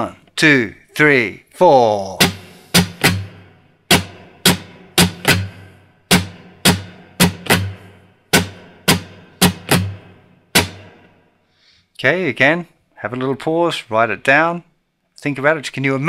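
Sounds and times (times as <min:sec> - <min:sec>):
muted acoustic guitar strums: 0:02.0 - 0:11.2.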